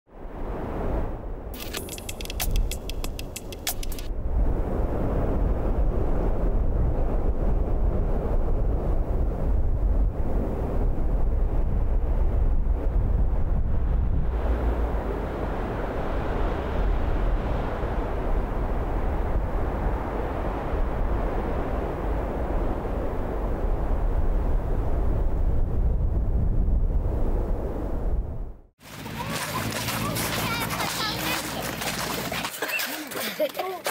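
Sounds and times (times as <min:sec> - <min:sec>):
wind rumble on microphone: 0:00.1 - 0:28.7
rushing wind hiss: 0:01.5 - 0:25.2.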